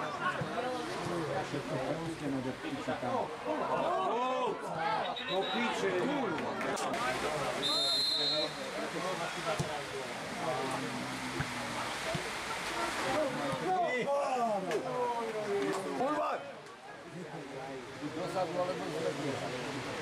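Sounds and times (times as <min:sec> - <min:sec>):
people shouting and talking: 0:00.0 - 0:20.0
high whistle blast: 0:07.6 - 0:08.6.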